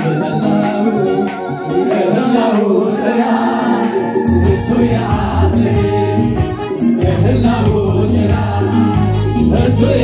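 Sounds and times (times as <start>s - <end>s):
congregation singing gospel song: 0.0s - 10.0s
electronic keyboard accompaniment: 0.0s - 10.0s
steady bass line: 3.9s - 10.0s.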